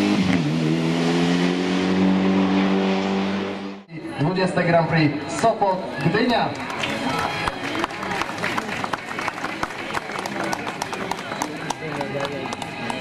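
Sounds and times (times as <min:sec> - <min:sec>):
crowd applauding: 0:05.9 - 0:13.0.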